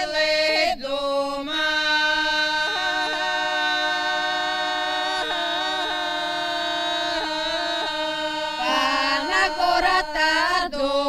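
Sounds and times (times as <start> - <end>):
women singing a cappella: 0.0 - 11.0.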